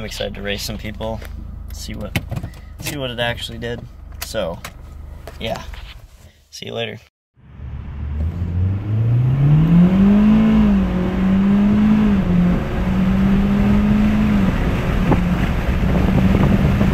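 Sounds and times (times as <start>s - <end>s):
car engine accelerating hard: 7.4s - 16.9s.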